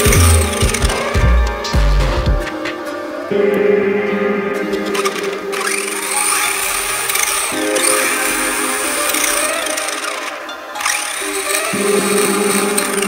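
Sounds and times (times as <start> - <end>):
electric motor whining: 0.0 - 1.9, 5.0 - 13.0
background music: 0.0 - 13.0.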